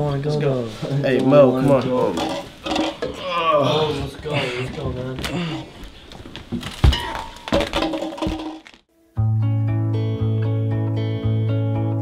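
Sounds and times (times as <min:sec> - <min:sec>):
plastic cups being kicked: 0:02.1 - 0:03.2, 0:06.3 - 0:08.9.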